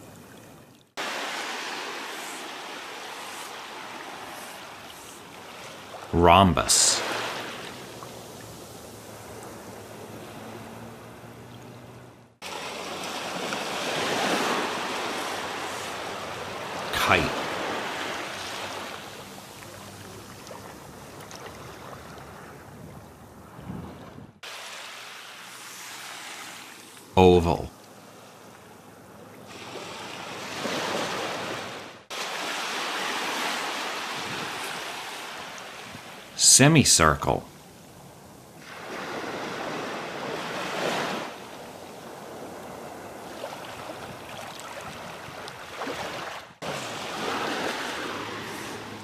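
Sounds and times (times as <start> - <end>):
waves washing on sandy beach: 0.0 - 49.0.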